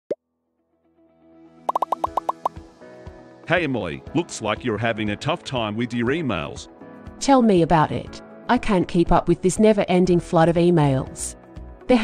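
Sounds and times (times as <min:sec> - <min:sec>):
light background music: 0:01.0 - 0:12.0
rising bloop sound effect: 0:01.7 - 0:02.5
plucky popping notes: 0:01.7 - 0:02.6.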